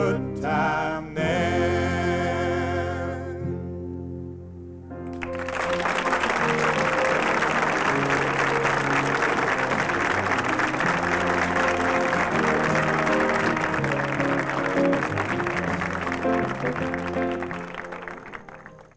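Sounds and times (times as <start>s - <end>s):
music playing: 0.0s - 18.9s
audience applauding: 5.0s - 18.9s.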